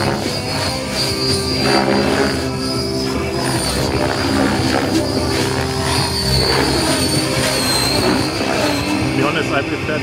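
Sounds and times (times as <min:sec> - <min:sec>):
model helicopter rotor and motor whine: 0:00.0 - 0:10.0.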